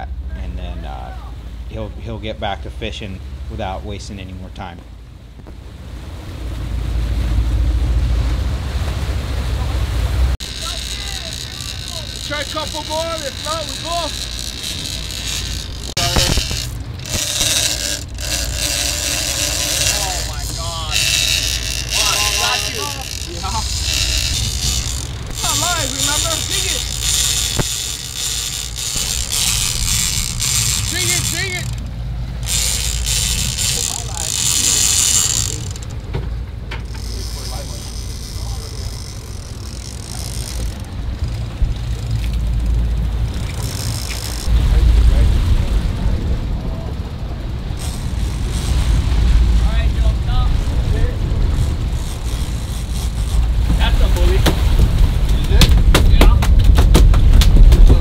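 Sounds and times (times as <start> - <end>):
deep engine rumble: 0.0 - 58.0
wind and water rushing: 0.0 - 58.0
voices calling out: 9.4 - 44.7.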